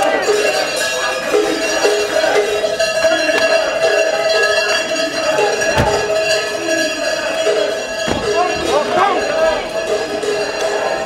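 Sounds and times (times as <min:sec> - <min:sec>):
large cowbells clanging: 0:00.0 - 0:11.0.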